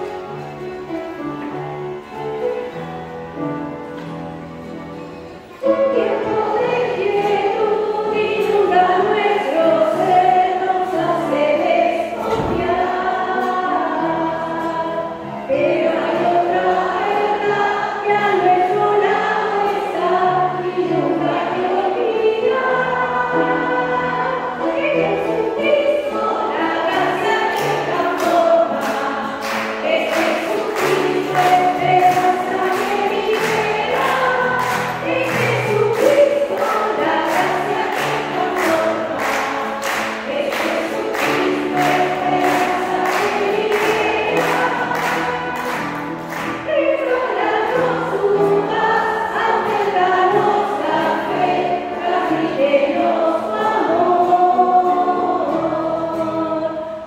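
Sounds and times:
piano accompaniment: 0.0s - 57.0s
women singing a hymn: 5.0s - 57.0s
woman singing into a microphone: 5.6s - 29.1s, 29.7s - 39.4s, 46.7s - 57.0s
clapping on the beat: 27.4s - 46.7s.

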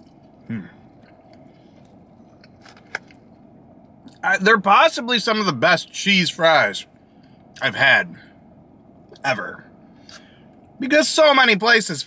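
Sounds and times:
person chewing food: 0.0s - 3.2s
person humming: 0.5s - 0.8s.

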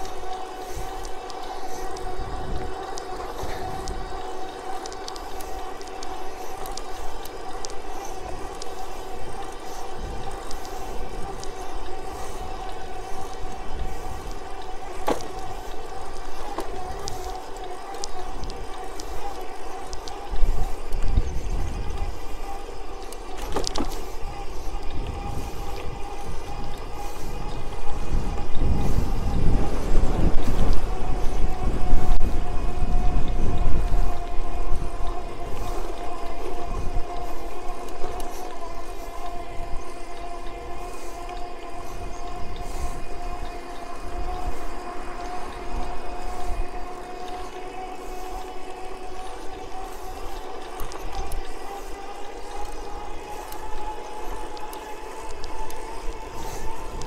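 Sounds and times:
electric bicycle motor whining: 0.0s - 57.0s
wind buffeting microphone: 0.0s - 57.0s.

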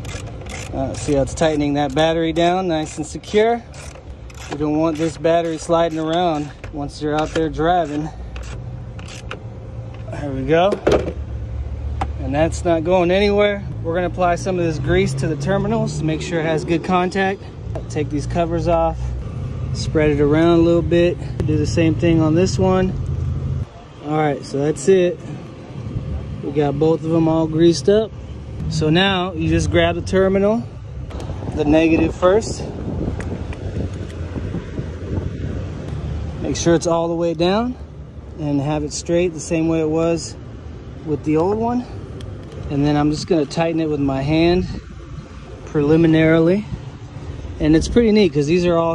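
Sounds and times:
socket ratchet clicking: 0.0s - 10.0s
wind buffeting microphone: 31.1s - 36.6s.

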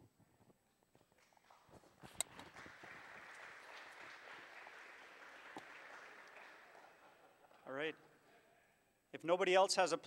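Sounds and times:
faint audience applause: 2.2s - 8.2s.

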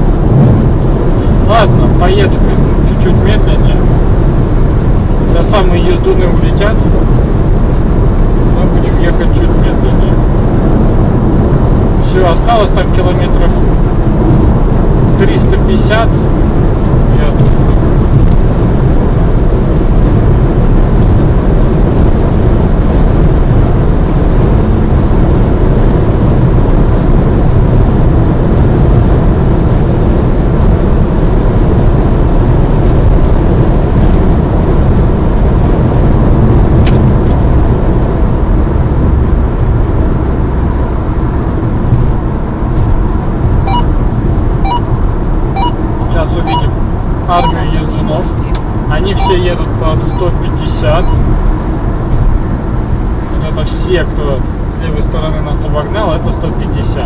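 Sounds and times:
low tyre rumble: 0.0s - 57.0s
road and wind noise in car: 0.0s - 57.0s.

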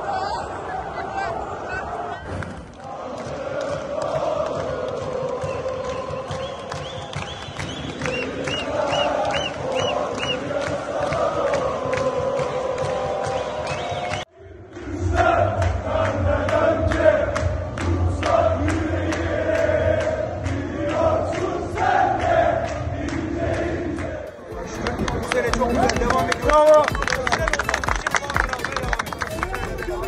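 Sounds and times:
football crowd chanting: 0.0s - 26.9s
rhythmic clapping: 2.7s - 14.3s, 15.2s - 30.0s
high whistles: 5.4s - 10.5s, 13.2s - 14.3s.

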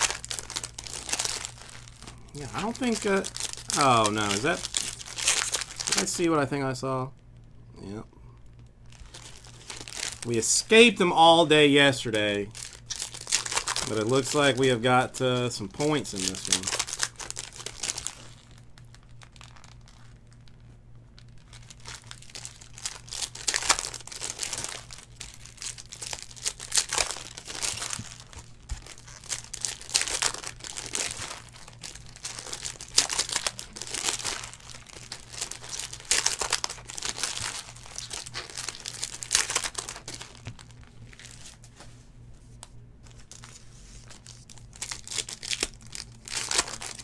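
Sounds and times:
foil wrappers crinkling: 0.0s - 6.5s, 8.4s - 41.8s, 43.0s - 47.0s.

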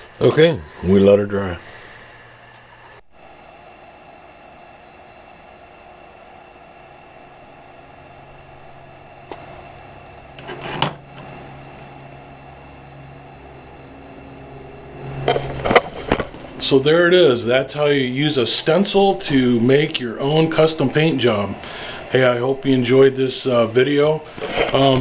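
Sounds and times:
low room hum: 0.0s - 25.0s.

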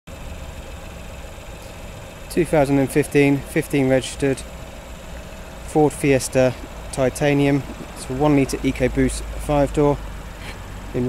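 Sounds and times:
car engine idling: 0.1s - 11.0s.

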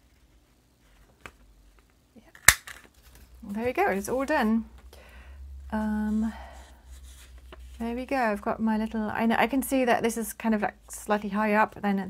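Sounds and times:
paper punch snapping shut: 2.4s - 2.8s.

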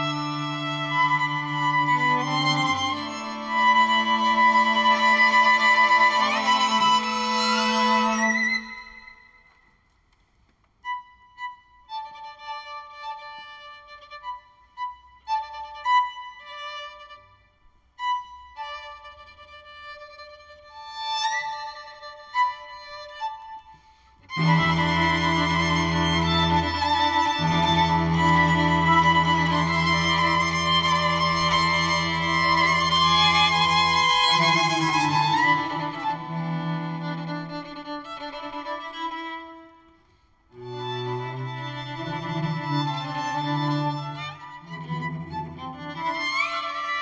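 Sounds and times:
low cello notes: 0.0s - 9.2s, 24.2s - 39.7s, 40.5s - 47.0s
string quartet playing: 0.0s - 9.2s, 24.2s - 39.8s, 40.5s - 47.0s.

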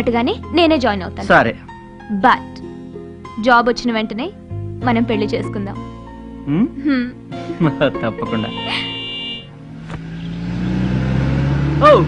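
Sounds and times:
car engine running: 8.3s - 12.0s.

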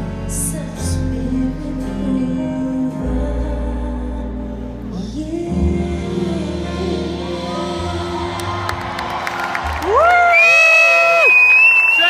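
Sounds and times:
live concert music: 0.0s - 12.0s
audience whooping and screaming: 8.2s - 12.0s
crowd cheering: 8.2s - 12.0s.

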